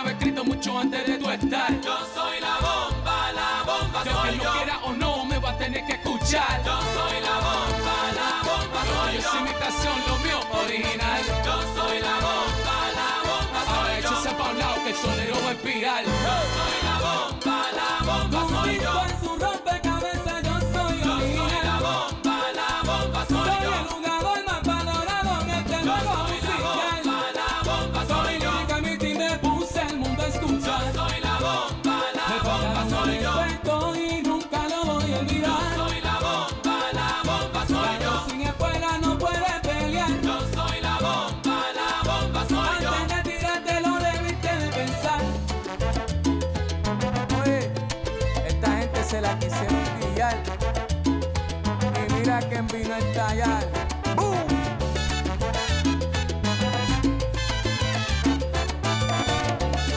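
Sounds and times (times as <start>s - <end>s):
salsa music: 0.0s - 59.9s.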